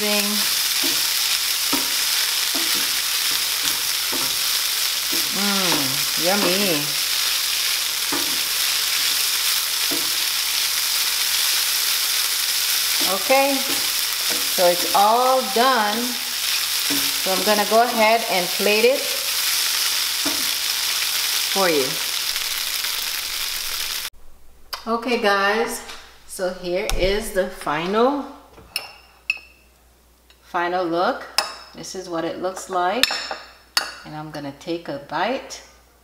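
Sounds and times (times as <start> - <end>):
food sizzling in a frying pan: 0.0 - 24.1.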